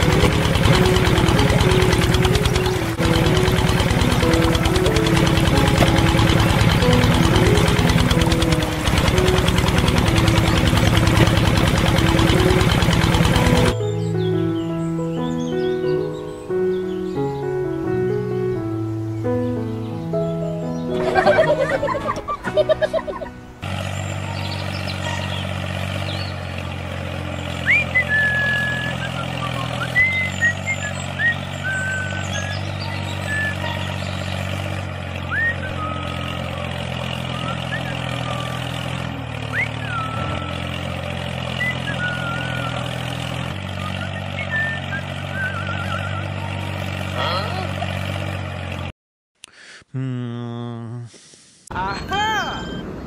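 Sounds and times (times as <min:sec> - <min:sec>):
small birds chirping: 0:00.0 - 0:12.6, 0:13.4 - 0:48.3
tractor engine idling: 0:00.0 - 0:14.6, 0:20.2 - 0:48.9
music: 0:00.0 - 0:26.4, 0:27.6 - 0:34.3.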